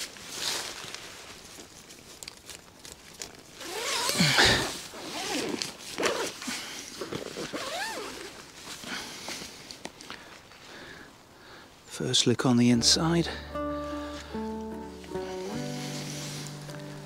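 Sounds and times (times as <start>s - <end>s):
nylon fabric rustling: 0.0s - 9.0s, 14.9s - 17.0s
zipper being drawn open: 3.6s - 8.4s.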